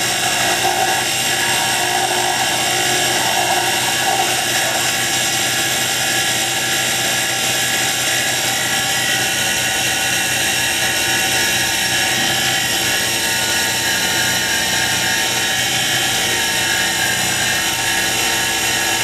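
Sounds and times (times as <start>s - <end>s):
hand sanding spinning wood: 0.0s - 7.0s
wood lathe whining: 0.0s - 19.0s.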